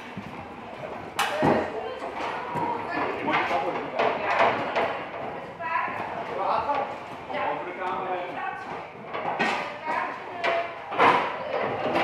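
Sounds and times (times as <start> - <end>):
plastic chairs knocking: 1.2 - 7.2, 7.8 - 12.0.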